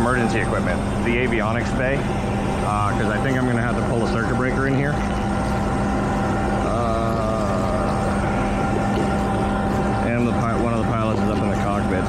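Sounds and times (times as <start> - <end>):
jet power equipment drone: 0.0 - 12.0.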